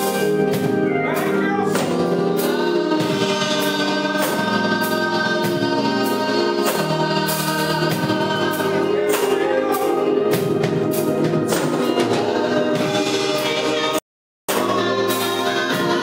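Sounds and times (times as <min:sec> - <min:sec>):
gospel choir singing: 0:00.0 - 0:16.0.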